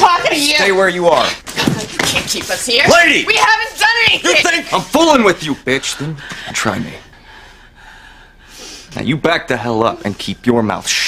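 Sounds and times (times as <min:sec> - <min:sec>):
person inhaling: 0:07.2 - 0:08.9.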